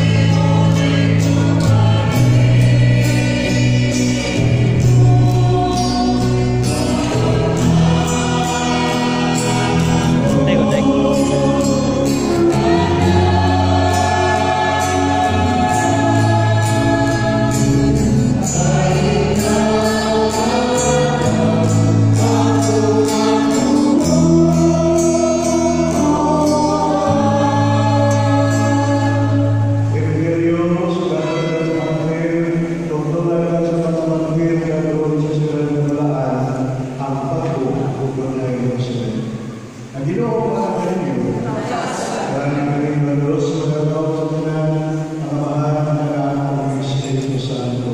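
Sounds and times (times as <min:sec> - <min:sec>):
group singing a slow hymn: 0:00.0 - 0:47.9.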